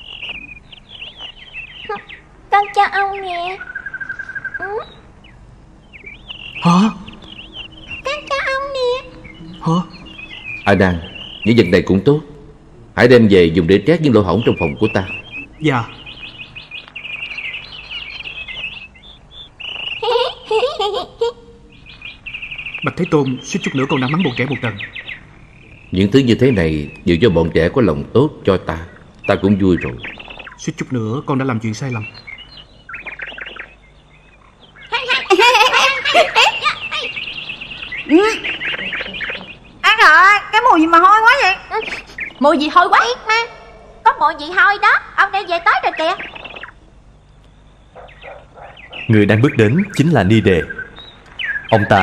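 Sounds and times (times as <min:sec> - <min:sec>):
songbirds chirping: 0:00.0 - 0:52.0
children calling out and laughing: 0:04.6 - 0:05.0, 0:08.0 - 0:10.0, 0:20.0 - 0:21.7, 0:34.9 - 0:37.3, 0:38.0 - 0:42.1.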